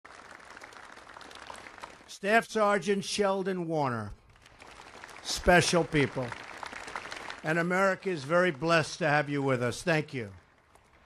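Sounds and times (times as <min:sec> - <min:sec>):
audience applauding: 0:00.0 - 0:02.1, 0:04.3 - 0:09.6.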